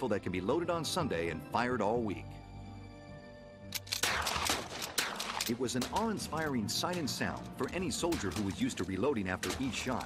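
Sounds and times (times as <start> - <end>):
orchestral music: 0.0 - 10.0
rapid rifle gunfire: 4.0 - 7.2.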